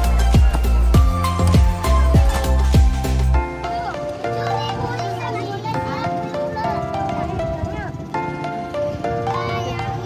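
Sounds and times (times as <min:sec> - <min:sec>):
children chattering and calling out: 0:00.0 - 0:10.0
music with sustained melodic notes: 0:00.0 - 0:10.0.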